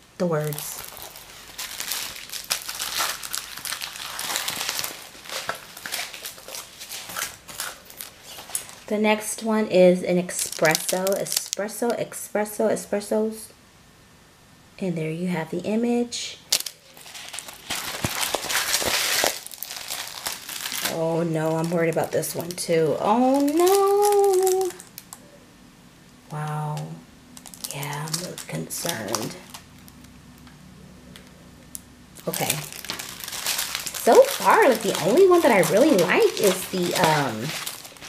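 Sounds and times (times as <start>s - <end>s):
plastic film crinkling: 0.2s - 9.5s, 10.2s - 11.9s, 16.5s - 25.2s, 26.3s - 30.5s, 31.2s - 38.0s.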